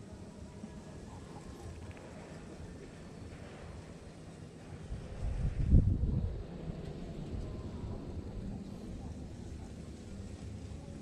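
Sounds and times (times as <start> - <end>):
wind buffeting microphone: 4.7 - 8.6.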